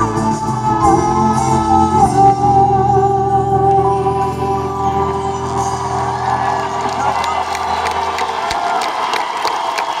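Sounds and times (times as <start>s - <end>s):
crowd applauding and cheering: 4.4s - 10.0s.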